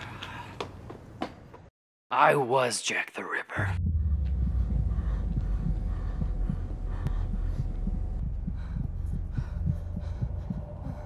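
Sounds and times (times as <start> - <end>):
deep low drone: 3.8 - 11.0
pulsing low thuds: 3.8 - 11.0.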